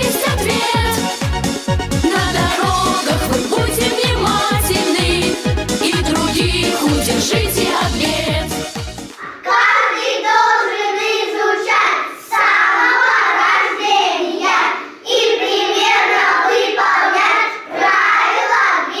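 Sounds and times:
children singing in unison: 0.0s - 1.0s, 2.1s - 8.5s, 9.2s - 19.0s.

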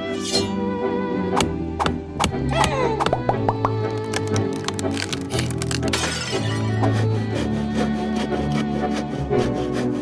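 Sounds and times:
cartoon background music: 0.0s - 10.0s
tree splintering and falling: 4.0s - 6.7s.

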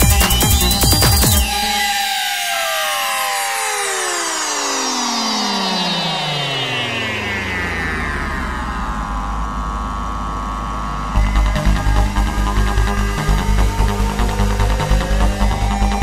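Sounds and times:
low synthesizer drone: 0.0s - 16.0s
synthesizer sweep falling in pitch: 0.0s - 16.0s.

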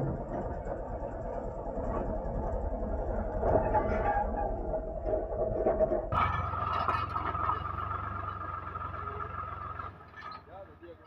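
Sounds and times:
tractor diesel engine under load: 4.9s - 11.0s.

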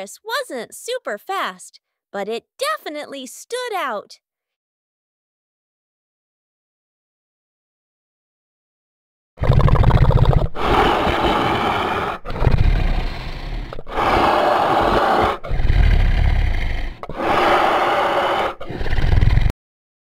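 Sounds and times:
dinosaur roars and growls: 9.4s - 19.5s.

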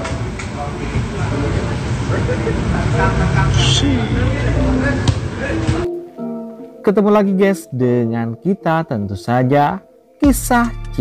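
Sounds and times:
indistinct voices: 0.0s - 5.9s.

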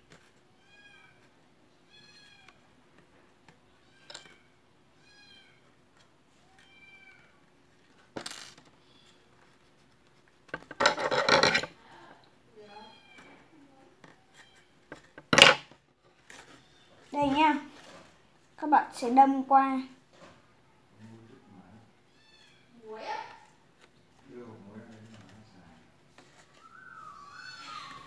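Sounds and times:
high-pitched animal calls: 26.6s - 28.0s.

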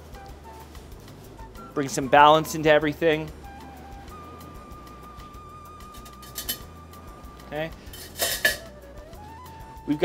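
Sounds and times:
soft background music: 0.0s - 10.0s
plates and kitchenware clinking: 5.9s - 6.7s, 7.8s - 8.7s.

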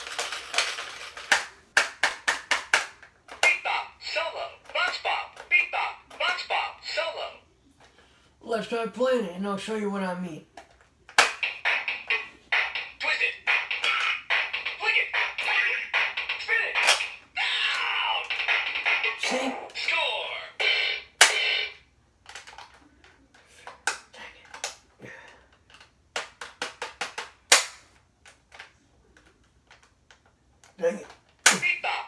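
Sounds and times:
plastic clicks and slaps: 0.6s - 3.6s, 25.7s - 31.6s
electronic toy voice and effects: 3.3s - 7.5s, 11.4s - 21.8s, 30.8s - 32.0s.

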